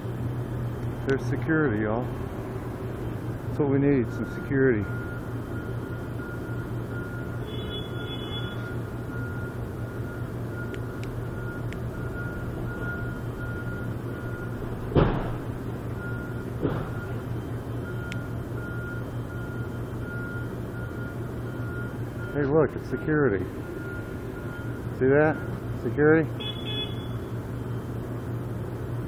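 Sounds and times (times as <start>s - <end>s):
low machinery drone: 0.0s - 29.0s
high electronic beeper: 3.9s - 14.6s
sharp bangs: 14.8s - 15.6s.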